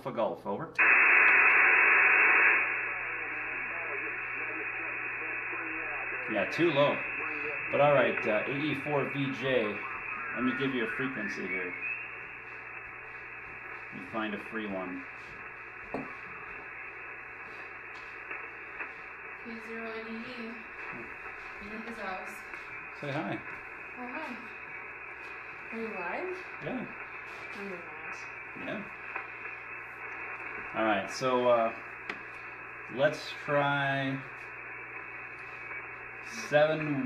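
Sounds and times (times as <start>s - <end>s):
radio static hiss: 0.7s - 37.0s.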